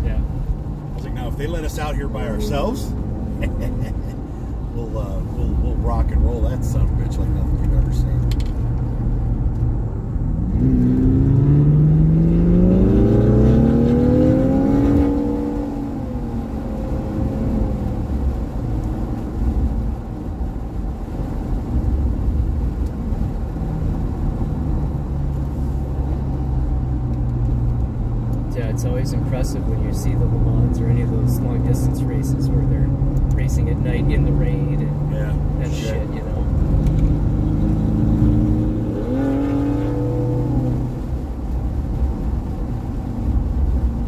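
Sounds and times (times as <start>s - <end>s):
sports car engine accelerating: 0.1s - 20.4s, 21.2s - 43.9s.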